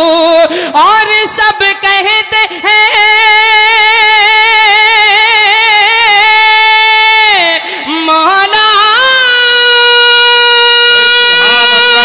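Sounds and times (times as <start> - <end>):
man singing a long note: 9.0 - 12.0.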